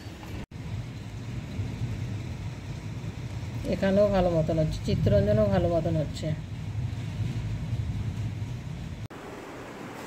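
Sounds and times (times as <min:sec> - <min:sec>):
wind: 0:00.0 - 0:10.0
rainstorm rumbling: 0:00.1 - 0:10.0.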